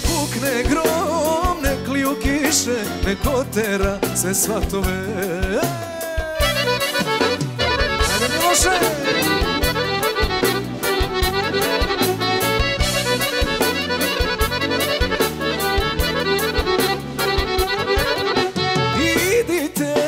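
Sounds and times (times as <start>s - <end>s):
accordion melody: 0.0s - 20.0s
folk band playing: 0.0s - 20.0s
steady drum beat: 0.0s - 20.0s.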